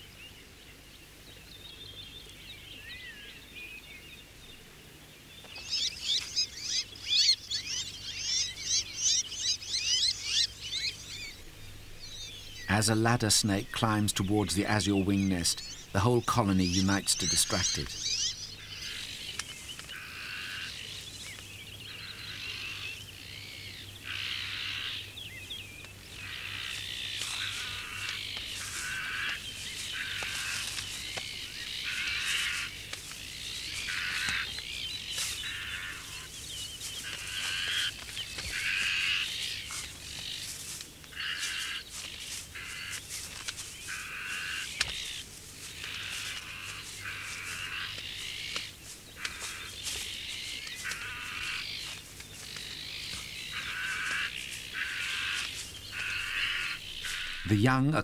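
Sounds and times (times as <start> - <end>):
magpies harsh alarm calls: 5.6 - 58.0.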